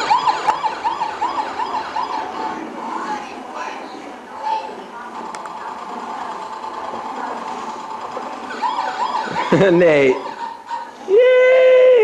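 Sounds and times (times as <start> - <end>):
siren yelping: 0.0 - 3.1, 8.4 - 11.0.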